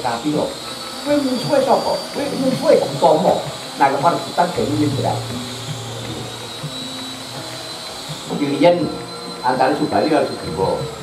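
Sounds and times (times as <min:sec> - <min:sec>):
low steady hum: 0:00.0 - 0:11.0
steady hiss: 0:00.0 - 0:11.0
thin high whine: 0:00.0 - 0:11.0.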